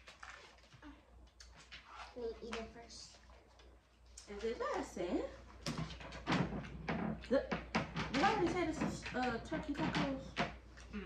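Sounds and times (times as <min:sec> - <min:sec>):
people talking at table: 0:00.8 - 0:11.0.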